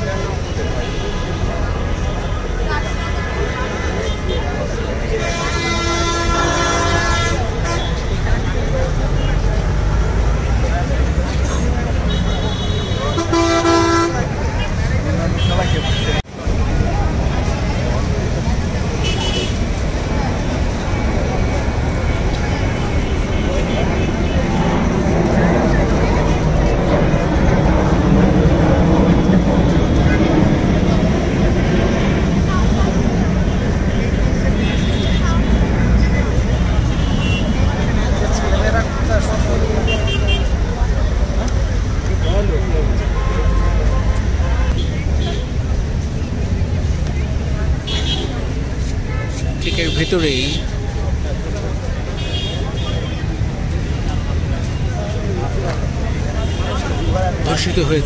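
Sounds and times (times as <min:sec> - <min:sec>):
crowd chatter: 0:00.0 - 0:58.0
traffic engine noise: 0:00.0 - 0:58.0
vehicle horns honking: 0:05.1 - 0:08.4, 0:12.0 - 0:14.8, 0:15.4 - 0:16.2, 0:19.0 - 0:19.8, 0:34.6 - 0:35.6, 0:36.8 - 0:37.8, 0:39.8 - 0:40.6, 0:42.2 - 0:45.6, 0:47.8 - 0:48.5, 0:52.1 - 0:53.2.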